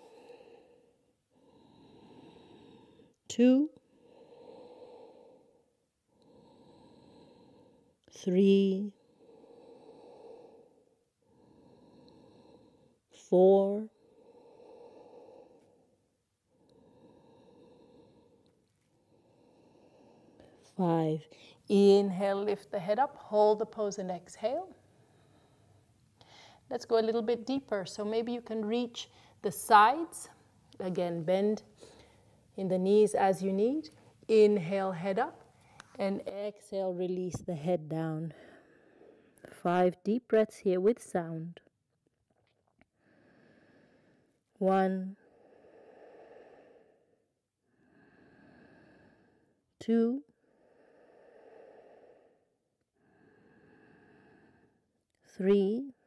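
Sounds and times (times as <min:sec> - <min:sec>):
slow throat breathing: 0:00.0 - 0:08.2, 0:08.9 - 0:13.3, 0:13.9 - 0:21.7, 0:38.3 - 0:39.6, 0:42.4 - 0:55.4.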